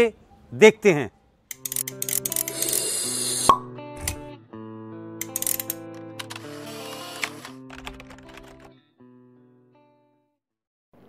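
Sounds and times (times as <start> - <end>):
quick clicks: 1.5 - 3.0, 5.2 - 8.6
rising hiss: 2.5 - 3.6.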